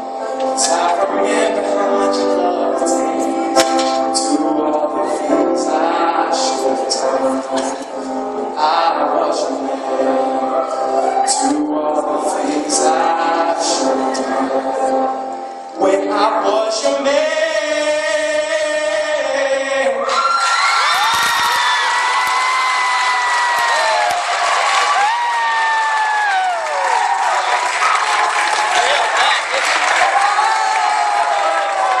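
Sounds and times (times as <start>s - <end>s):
high-pitched whoops and shrieks: 20.0s - 27.2s
audience applause and cheering: 20.0s - 32.0s.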